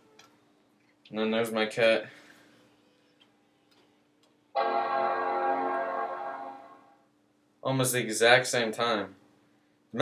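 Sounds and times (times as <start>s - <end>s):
faint steady hum: 0.0s - 10.0s
computer startup chime: 4.6s - 7.0s.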